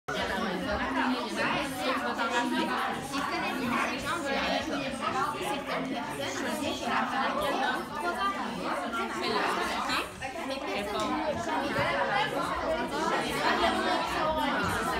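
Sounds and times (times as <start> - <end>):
chatter of voices: 0.1 - 14.9.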